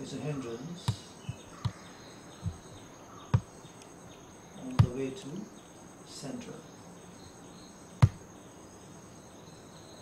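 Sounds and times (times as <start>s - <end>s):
insects chirring: 0.0s - 10.0s
sharp knock: 8.0s - 8.2s.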